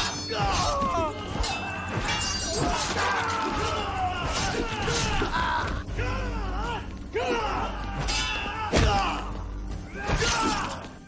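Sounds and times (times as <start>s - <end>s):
men grunting and shouting: 0.0s - 10.9s
glass breaking: 1.4s - 2.7s.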